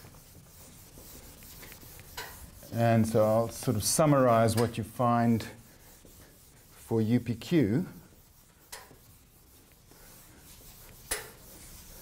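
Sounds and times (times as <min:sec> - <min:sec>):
eraser rubbing on chalkboard: 0:00.0 - 0:12.0.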